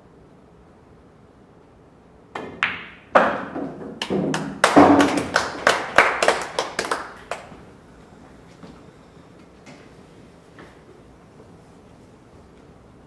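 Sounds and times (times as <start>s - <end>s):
pool balls clacking: 2.3s - 7.6s.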